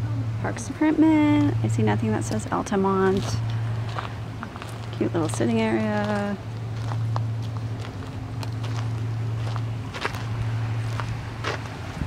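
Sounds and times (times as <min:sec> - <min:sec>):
steady low hum: 0:00.0 - 0:12.0
footsteps on gravel: 0:03.0 - 0:12.0.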